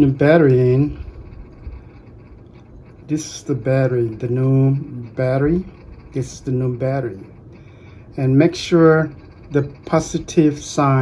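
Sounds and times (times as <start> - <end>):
low rumble: 0.0 - 10.3.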